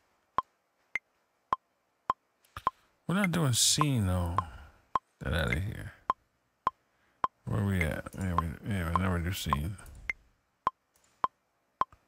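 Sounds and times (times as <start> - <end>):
man vocalizing: 3.1 - 6.1, 7.5 - 9.9.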